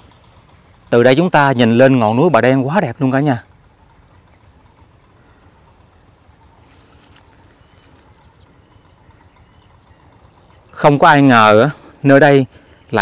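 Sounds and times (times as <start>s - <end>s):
low steady rumble: 0.0s - 13.0s
thin high-pitched whine: 0.0s - 13.0s.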